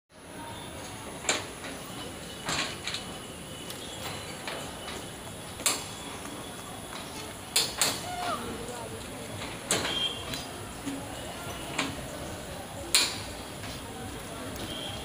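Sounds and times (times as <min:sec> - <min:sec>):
train coaches rolling past: 0:00.1 - 0:15.0
wheels clacking over rail joints: 0:00.8 - 0:15.0.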